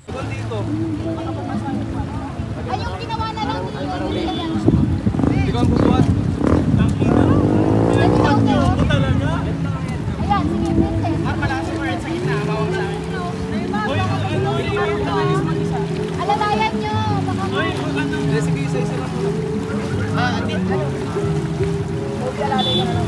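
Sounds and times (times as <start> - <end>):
river water running over stones: 0.0 - 23.0
splashing of people wading: 0.0 - 23.0
voices chattering and calling out: 0.0 - 23.0.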